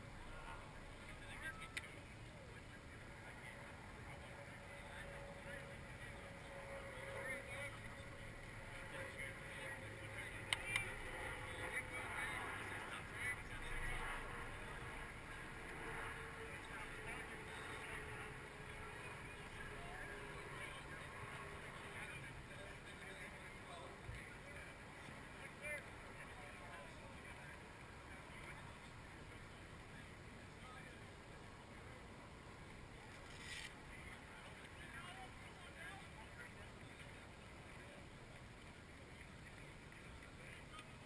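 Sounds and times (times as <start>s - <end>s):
faint distant voices: 0.0s - 41.0s
jet aircraft passing overhead: 3.0s - 23.5s.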